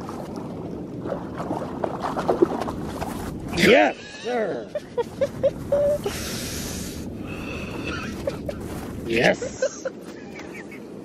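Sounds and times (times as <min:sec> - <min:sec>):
fish splashing in water: 0:00.0 - 0:03.3.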